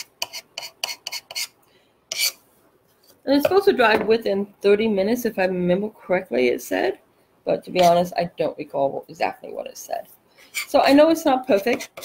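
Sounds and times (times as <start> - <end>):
knife scraping wet paste: 0.0 - 2.4, 10.5 - 12.0.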